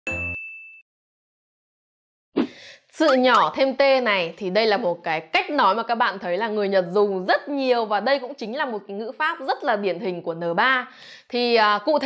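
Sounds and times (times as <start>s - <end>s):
ding with high ringing tone: 0.1s - 0.8s.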